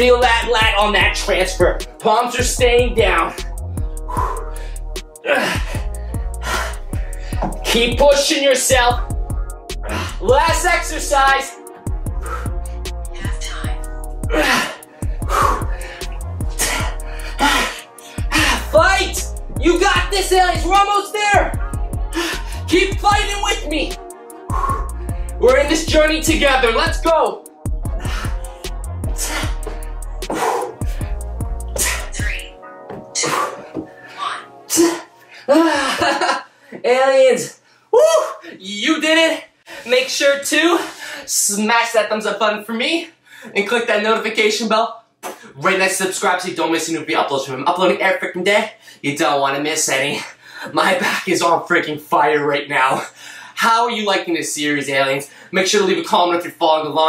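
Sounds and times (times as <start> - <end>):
background music with beat: 0.0 - 36.3
man breathing heavily and grunting: 3.4 - 7.6, 9.0 - 10.3, 11.9 - 19.6, 21.6 - 22.7, 24.3 - 25.4, 27.7 - 36.8
man exhaling heavily: 14.2 - 18.7, 29.1 - 32.5.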